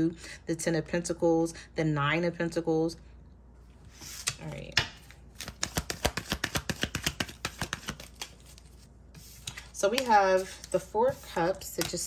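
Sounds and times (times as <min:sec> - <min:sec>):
cards being shuffled: 0:03.9 - 0:12.0.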